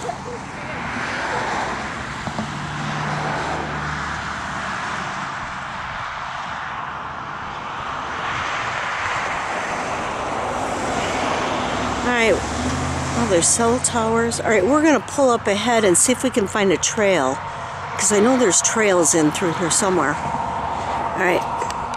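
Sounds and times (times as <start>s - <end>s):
road traffic passing: 0.0s - 21.9s.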